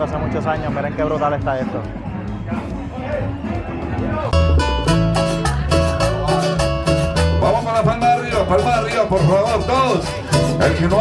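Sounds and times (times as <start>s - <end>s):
upbeat guitar music with bass: 3.5s - 11.0s.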